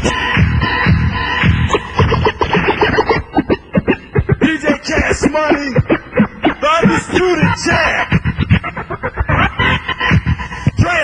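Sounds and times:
turntable scratching: 0:00.0 - 0:11.0.

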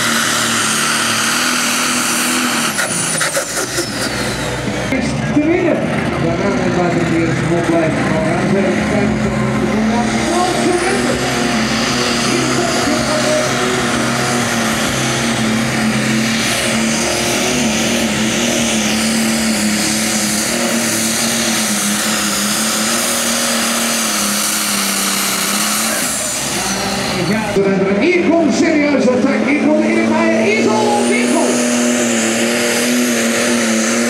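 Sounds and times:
diesel engine at full power: 0:00.0 - 0:34.0
falling whine: 0:00.0 - 0:34.0.

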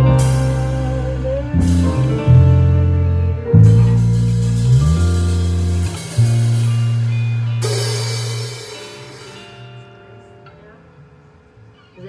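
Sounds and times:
long low bass note: 0:00.0 - 0:09.1
jazz combo playing: 0:00.0 - 0:10.1
cymbal crash: 0:03.8 - 0:09.8.

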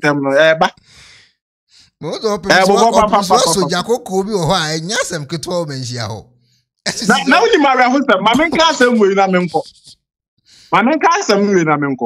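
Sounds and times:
breath: 0:00.8 - 0:02.0, 0:10.4 - 0:10.8
person speaking: 0:02.0 - 0:10.0.

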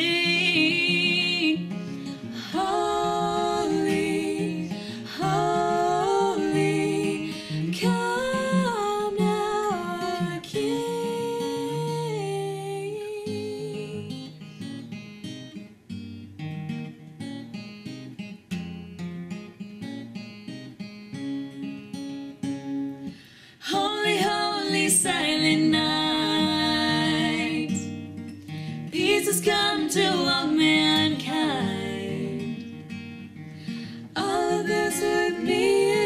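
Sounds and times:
women singing in harmony: 0:00.0 - 0:14.2, 0:23.6 - 0:28.0, 0:28.9 - 0:32.8, 0:33.8 - 0:36.0
acoustic guitar: 0:00.0 - 0:36.0.

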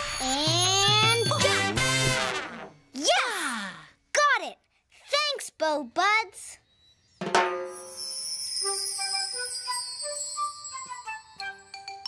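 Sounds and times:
child exclaiming: 0:03.0 - 0:06.6
cartoon magic twinkling shimmer: 0:06.6 - 0:11.2.

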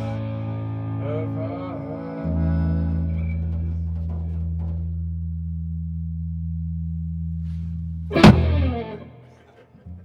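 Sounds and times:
electric bass sustained low note: 0:00.0 - 0:03.9, 0:04.8 - 0:09.2.

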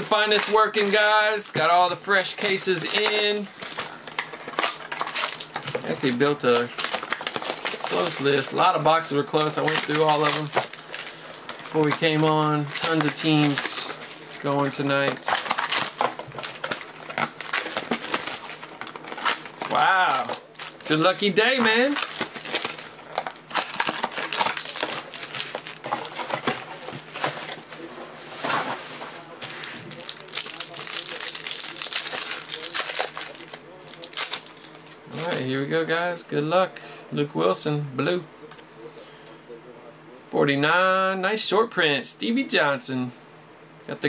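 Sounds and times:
plastic wrap crinkling: 0:00.0 - 0:35.6.

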